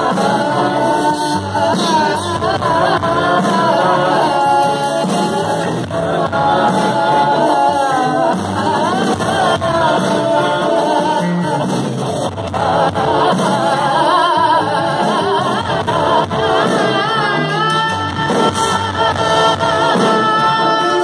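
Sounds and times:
backing voices: 0.0 - 21.0
bass guitar: 0.0 - 21.0
electric guitar: 0.0 - 21.0
woman singing into microphone: 0.0 - 21.0.

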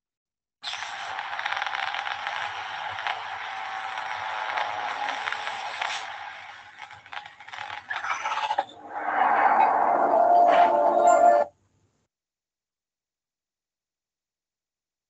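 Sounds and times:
crackling hissy sound effects: 0.6 - 10.2.

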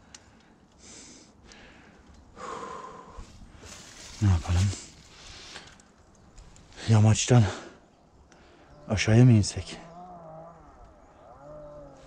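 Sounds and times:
man breathing noisily: 0.0 - 3.9, 5.0 - 5.9.

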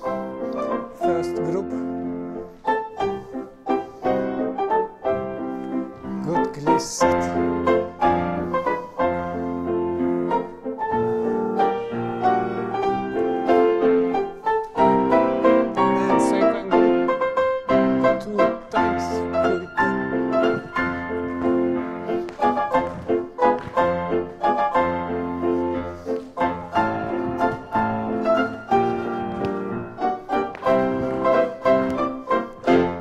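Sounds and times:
rhythmic piano music: 0.0 - 33.0.

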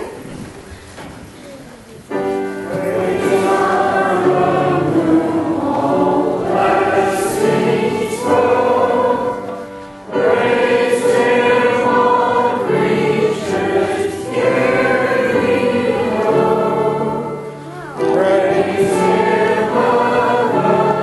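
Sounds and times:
choir singing: 2.6 - 21.0.

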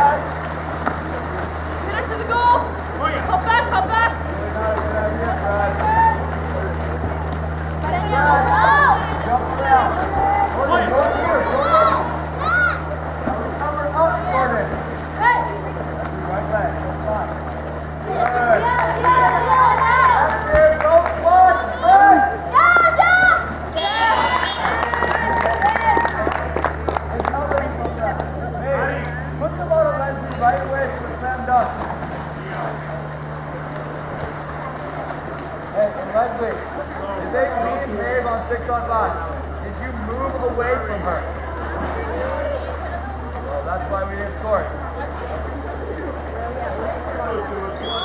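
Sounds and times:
steady low hum: 0.0 - 48.0
people shouting over one another: 5.8 - 6.3, 8.1 - 12.9, 18.5 - 20.5, 21.3 - 26.0.

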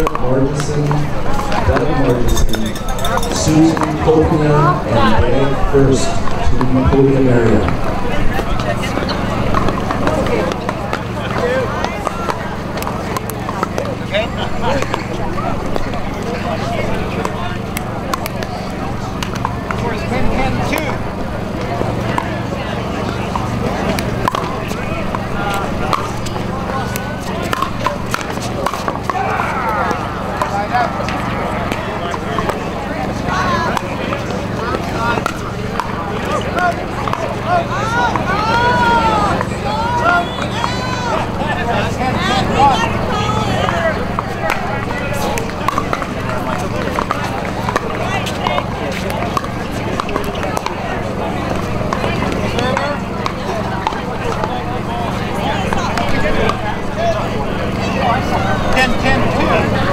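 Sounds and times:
people chatting: 0.0 - 59.9.

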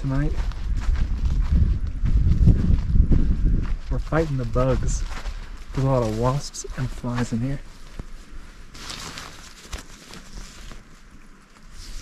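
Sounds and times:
tent fabric rustling: 5.5 - 12.0.

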